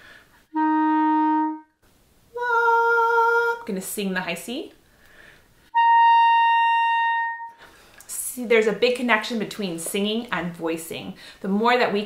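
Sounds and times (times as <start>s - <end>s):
clarinet holding high note: 0.5s - 1.8s, 5.7s - 7.6s.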